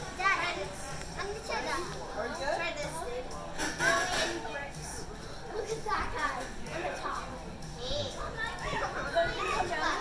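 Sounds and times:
children talking and calling out: 0.1s - 10.0s.

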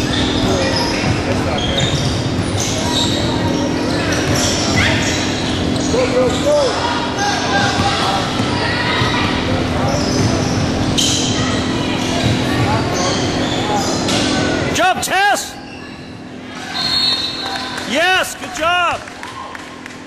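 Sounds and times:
sneaker squeaks on floor: 0.0s - 6.7s, 7.6s - 14.5s, 15.6s - 17.7s
crowd chatter: 0.0s - 20.0s.

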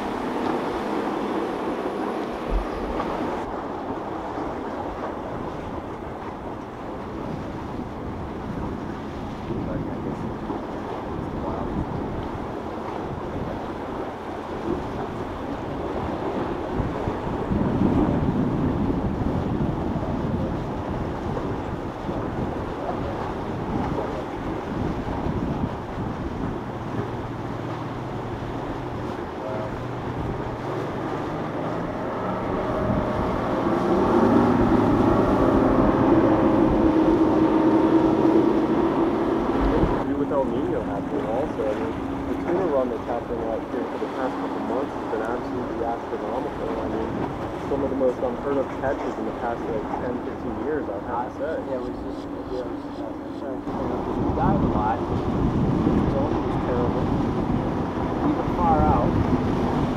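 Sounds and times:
boat engines running: 0.0s - 59.9s
waves washing: 0.0s - 59.9s
wind buffeting microphone: 0.0s - 59.9s.

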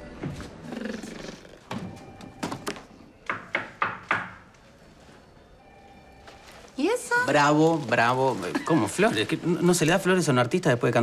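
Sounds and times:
sharp knocks: 3.3s - 4.5s.

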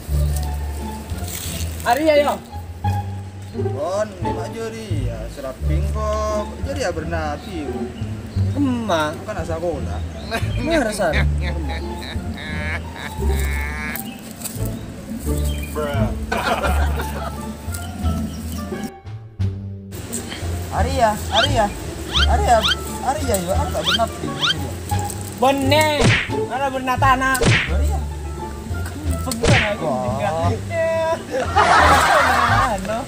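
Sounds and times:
whip-crack swish effect: 26.0s - 26.4s, 27.4s - 27.9s, 29.3s - 29.9s.

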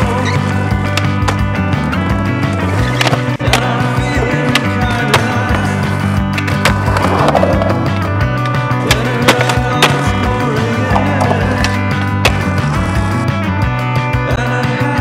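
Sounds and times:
skateboard wheels rolling on concrete: 0.0s - 13.6s
skateboard clacking on landing: 2.7s - 10.3s, 10.9s - 12.8s
loud song: 3.0s - 12.8s.

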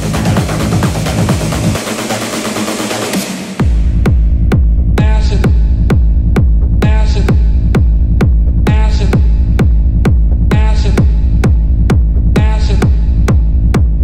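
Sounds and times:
deep sustained bass: 0.0s - 1.8s, 3.6s - 14.0s
kick drum: 0.0s - 2.0s, 3.6s - 14.0s.

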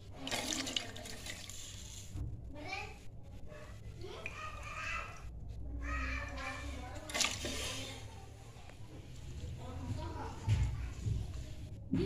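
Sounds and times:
food splashing into liquid: 0.0s - 1.9s, 7.0s - 8.0s.

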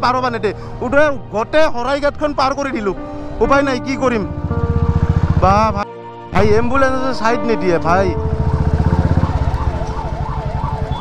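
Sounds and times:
motorcycle engine: 4.0s - 5.8s, 7.9s - 11.0s
ambulance siren wailing: 8.0s - 11.0s.

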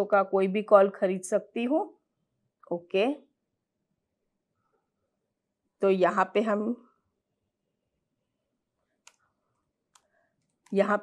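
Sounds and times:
laptop keys clicking: 9.0s - 10.8s.

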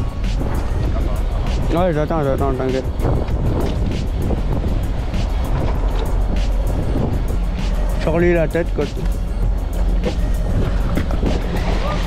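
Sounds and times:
boat engine idling: 0.0s - 12.0s
music playing: 0.0s - 12.0s.

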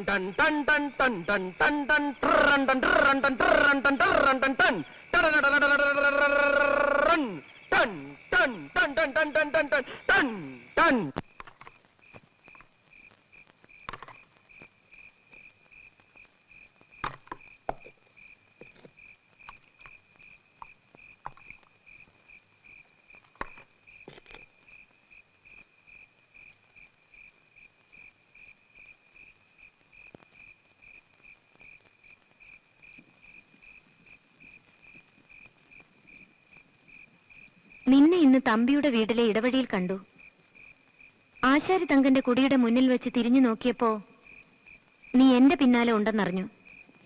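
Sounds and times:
crickets chirping: 0.0s - 47.0s.

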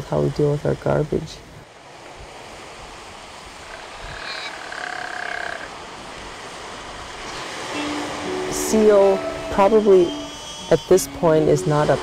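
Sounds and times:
sea noise: 0.0s - 12.0s
wind: 0.0s - 12.0s
faint drawn-out animal call: 3.6s - 5.8s, 9.6s - 11.2s.

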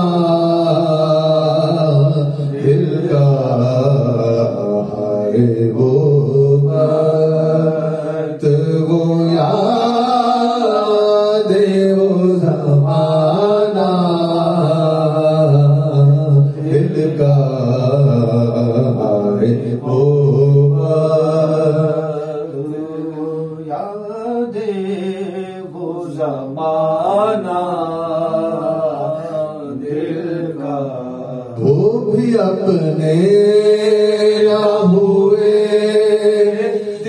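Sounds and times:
man chanting into microphone: 0.0s - 37.0s.

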